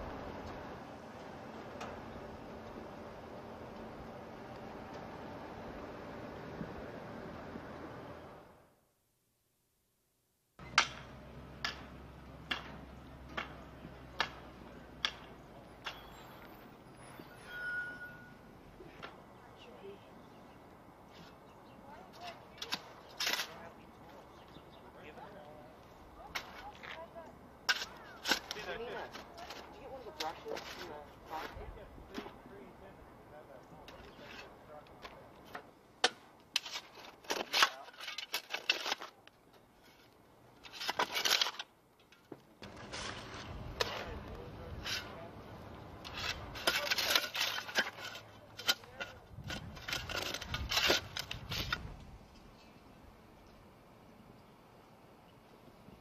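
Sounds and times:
shovel scraping into soil and stones: 22.6 - 23.6, 27.6 - 32.4, 36.5 - 39.2, 39.8 - 41.7, 42.6 - 45.3, 46.0 - 52.0.

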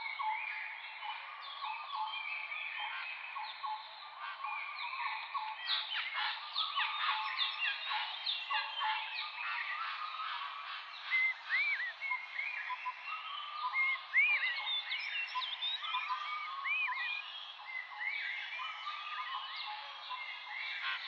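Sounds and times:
birds chirping chorus: 0.0 - 21.0.

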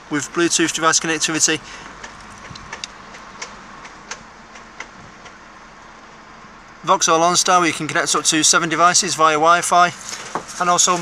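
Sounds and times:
faint irregular clicks: 1.8 - 5.4.

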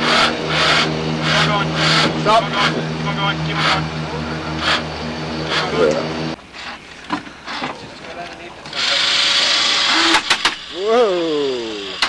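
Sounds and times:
car engine idling: 0.0 - 7.6.

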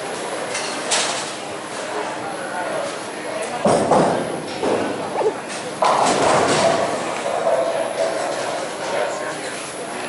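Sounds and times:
faint murmur of voices: 0.0 - 10.0
bowling balls rolling: 3.6 - 9.0.

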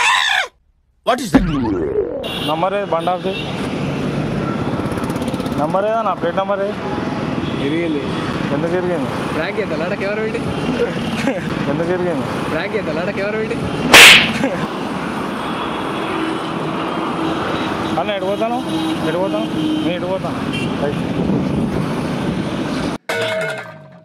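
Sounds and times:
street traffic: 0.0 - 24.0
people talking: 1.1 - 3.3
sharp loud noise burst: 13.9 - 14.4.

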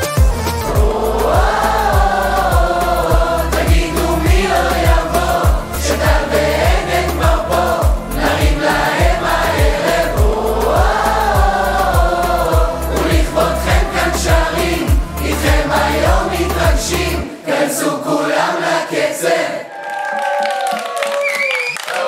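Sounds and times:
steady drum beat: 0.1 - 17.2
group singing pop song: 0.7 - 19.7.

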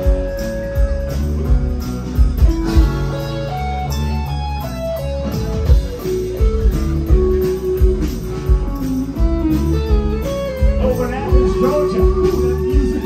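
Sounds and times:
bass: 0.0 - 13.0
drums: 0.0 - 13.0
electric lead guitar melody: 0.0 - 13.0
strummed acoustic guitar: 0.0 - 13.0.

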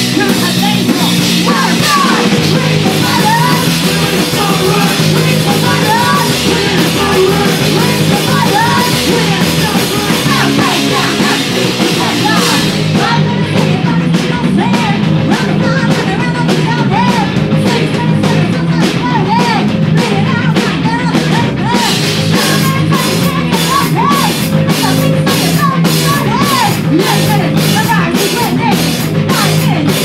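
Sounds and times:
bass guitar: 0.0 - 30.0
distorted electric guitars: 0.0 - 30.0
drum kit beat: 0.0 - 30.0
woman singing: 0.0 - 30.0.

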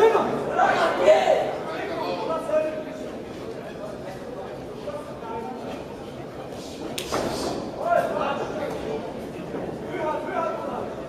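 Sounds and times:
voices calling out in a hall: 0.0 - 11.0.

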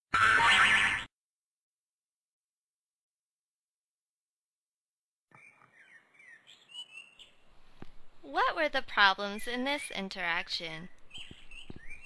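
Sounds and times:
bird chirping: 5.3 - 7.4, 11.0 - 12.0.

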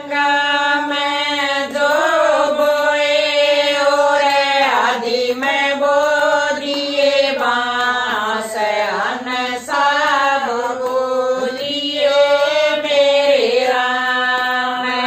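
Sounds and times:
women singing in unison: 0.0 - 15.0.

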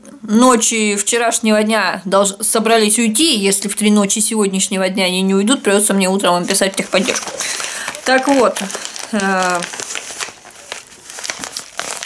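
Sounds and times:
foil pouch crinkling: 6.2 - 12.0.

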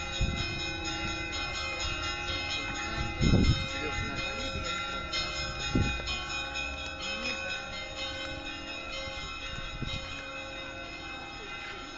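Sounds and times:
church bells ringing: 0.0 - 11.9.

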